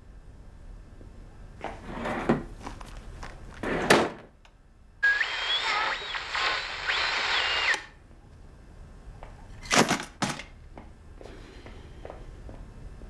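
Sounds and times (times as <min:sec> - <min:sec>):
radio static hiss: 0:05.0 - 0:07.9
radio tuning whistles: 0:05.0 - 0:08.0.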